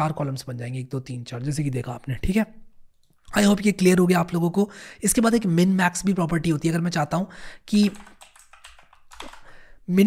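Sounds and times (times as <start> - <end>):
typing on computer keyboard: 7.7 - 9.6.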